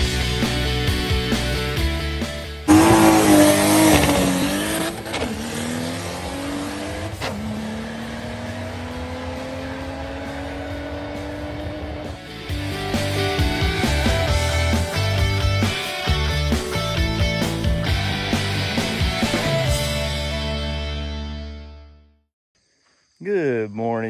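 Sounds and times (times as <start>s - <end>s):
music: 0.0s - 5.0s, 6.5s - 22.3s
car engine accelerating hard: 2.7s - 14.7s.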